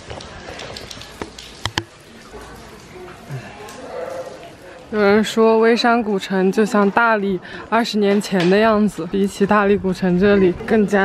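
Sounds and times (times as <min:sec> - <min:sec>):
light rain falling: 0:00.0 - 0:11.0
sharp knocks and taps: 0:01.2 - 0:01.9.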